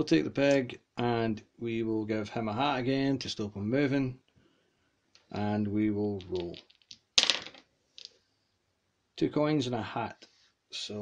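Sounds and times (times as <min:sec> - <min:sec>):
dice clattering on wooden table: 0:06.1 - 0:08.2.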